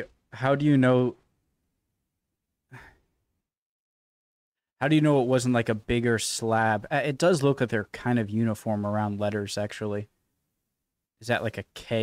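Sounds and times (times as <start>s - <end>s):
man breathing out softly: 2.7s - 3.1s.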